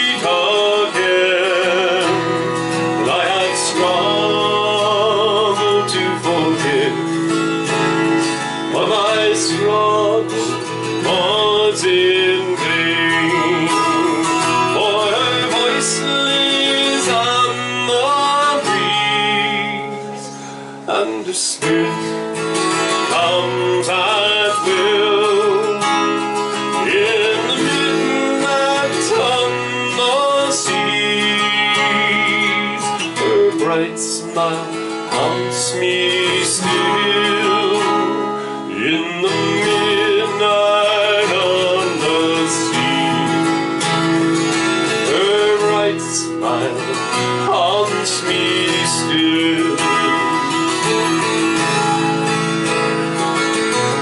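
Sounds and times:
man singing a slow ballad: 0.0s - 52.4s
strummed acoustic guitar: 0.0s - 54.0s.

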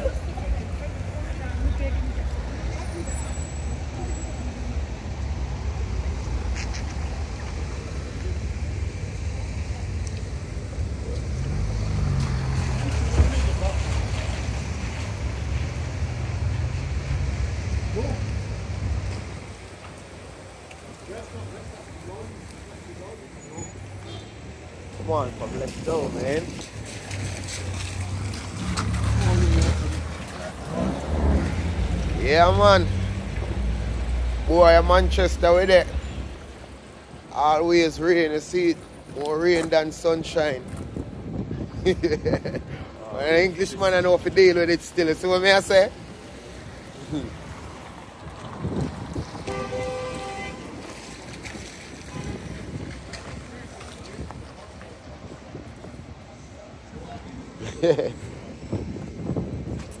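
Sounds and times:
cars passing on wet road: 0.0s - 60.0s
low traffic rumble: 0.0s - 60.0s.

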